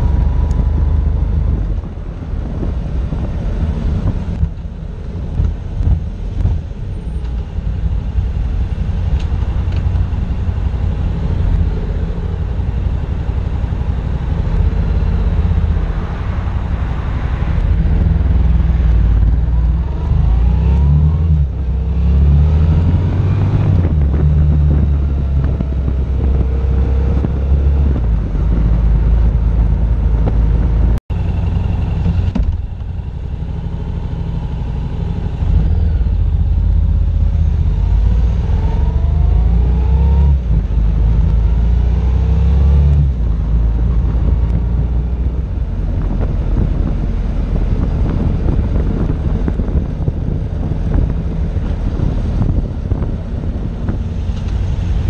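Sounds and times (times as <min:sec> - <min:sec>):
motorcycle engine accelerating: 0:00.0 - 0:55.0
wind rumble on microphone: 0:00.0 - 0:55.0.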